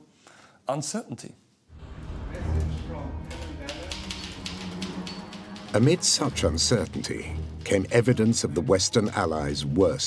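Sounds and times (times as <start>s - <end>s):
low musical drone: 1.8s - 8.7s
typewriter keys clacking: 3.3s - 7.1s.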